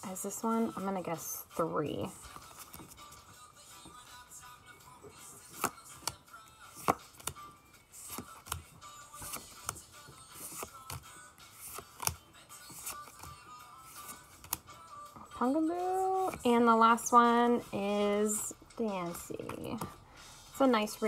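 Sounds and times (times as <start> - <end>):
faint background music: 0.0 - 21.0
trading cards being handled: 2.3 - 4.2, 5.2 - 15.2, 19.0 - 20.0.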